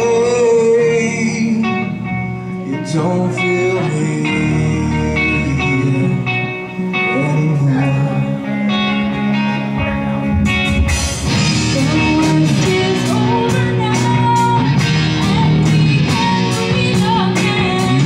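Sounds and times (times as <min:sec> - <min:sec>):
bass guitar: 0:00.0 - 0:18.0
drums: 0:00.0 - 0:18.0
electric guitar chords: 0:00.0 - 0:18.0.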